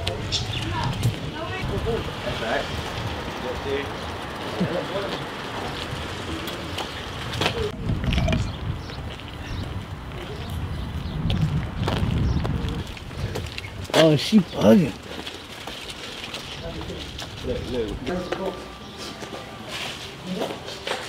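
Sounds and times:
wind buffeting microphone: 0.0 - 18.3
faint indistinct voices: 16.5 - 21.0.

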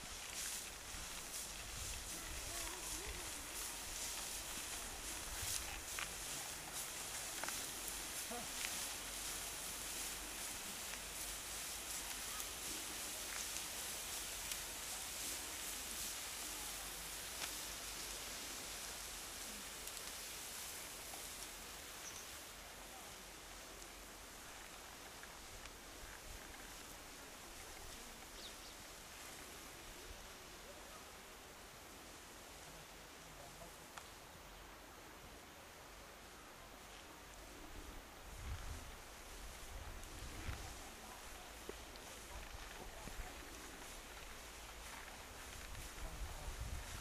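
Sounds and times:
faint voices: 0.0 - 28.4, 37.1 - 47.0
high hiss: 0.0 - 47.0.

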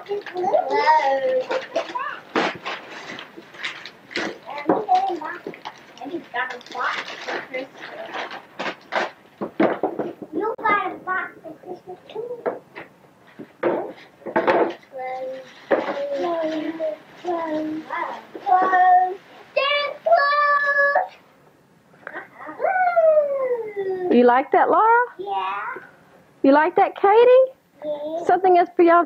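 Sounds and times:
children's voices: 0.0 - 2.4, 4.4 - 6.8, 14.9 - 21.2
paper rustling and tearing: 0.2 - 9.2.

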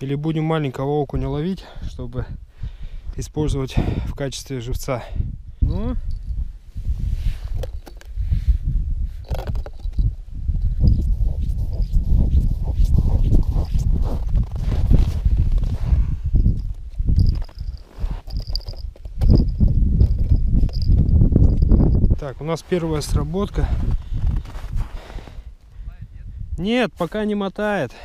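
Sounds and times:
wind buffeting microphone: 1.8 - 4.4, 5.0 - 26.6
crunching snow: 10.9 - 16.2, 16.9 - 18.8, 22.2 - 25.5
handling noise: 16.4 - 22.2.

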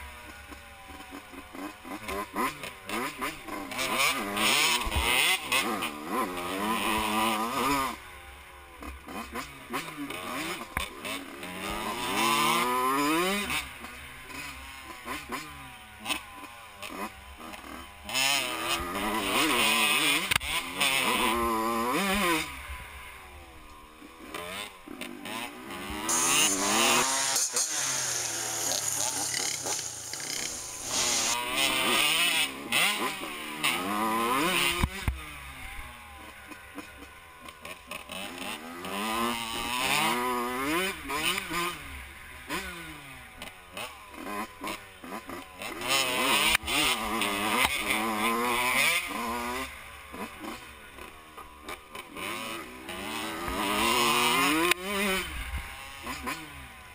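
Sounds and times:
dirt bike engine revving: 0.0 - 56.9
steady hiss: 26.1 - 31.4.

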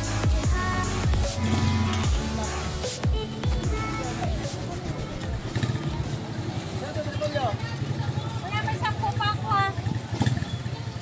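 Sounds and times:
people talking nearby: 3.1 - 11.0.

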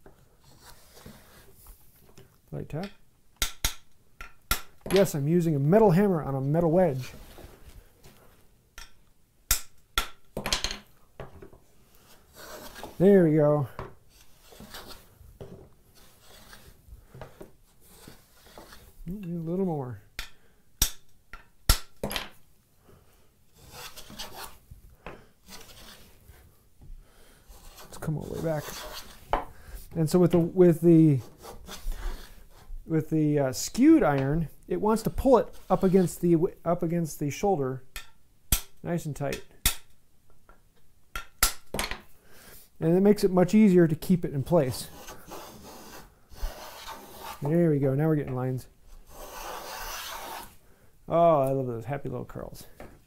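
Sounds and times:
wooden plane shaving a board: 12.3 - 13.0, 16.0 - 16.7, 25.5 - 26.2, 27.5 - 29.2, 44.7 - 47.6, 49.0 - 50.6.

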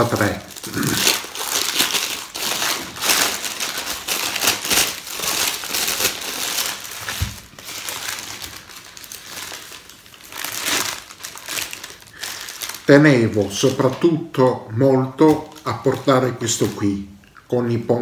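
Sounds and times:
paper wrapper crinkling: 0.0 - 17.1.

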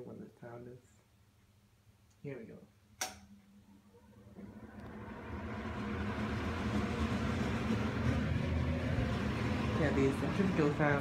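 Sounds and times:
switch click: 3.0 - 3.3
exhaust fan whooshing: 4.2 - 11.0.

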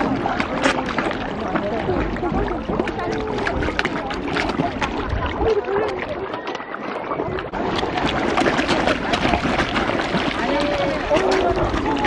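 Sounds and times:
fish splashing and slurping: 0.0 - 12.0
water sloshing against edge: 0.0 - 12.0.

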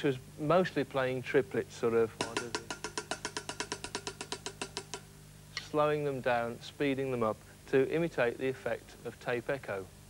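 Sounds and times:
fast light drum hits: 2.2 - 5.1.

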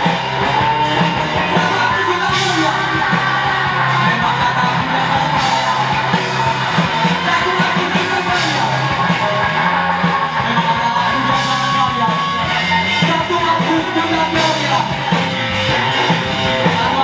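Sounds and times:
bass guitar: 0.0 - 17.0
drum kit with cymbal crashes: 0.0 - 17.0
electric guitars: 0.0 - 17.0
person singing: 0.0 - 17.0.

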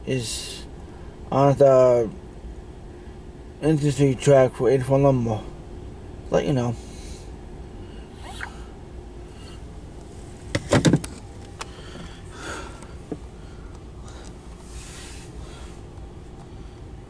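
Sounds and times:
low rumble inside car cabin: 0.0 - 17.0.

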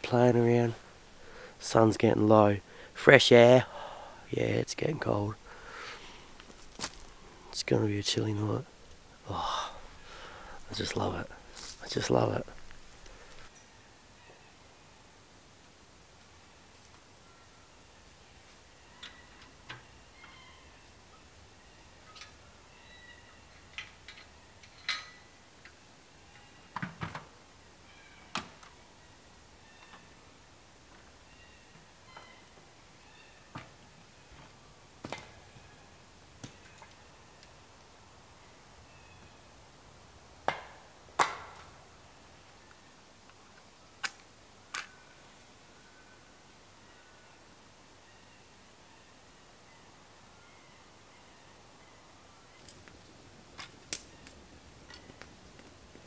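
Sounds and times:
faint bird chirps: 18.6 - 23.7, 31.2 - 34.4, 44.9 - 52.7.

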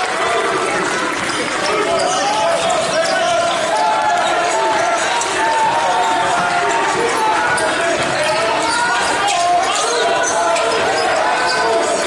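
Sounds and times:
players and spectators chatter: 0.0 - 12.0.

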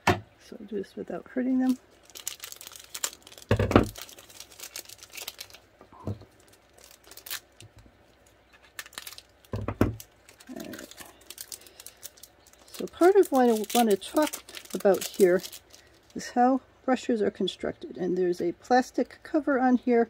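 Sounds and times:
plastic packaging crinkling: 1.3 - 16.3.

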